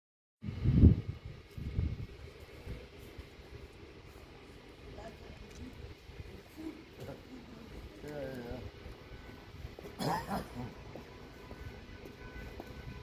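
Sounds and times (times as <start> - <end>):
wind buffeting microphone: 0.4 - 6.6
faint outdoor background: 0.4 - 13.0.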